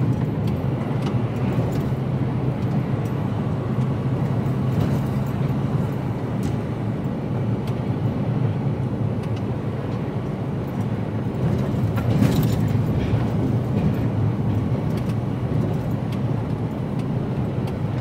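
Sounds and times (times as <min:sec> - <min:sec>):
lorry engine and tyres droning: 0:00.0 - 0:18.0.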